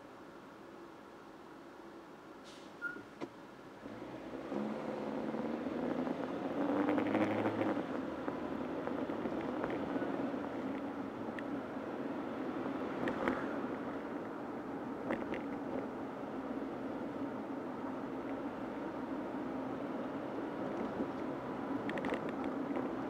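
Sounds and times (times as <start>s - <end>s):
road noise: 0.0s - 23.0s
car engine accelerating: 3.8s - 10.7s.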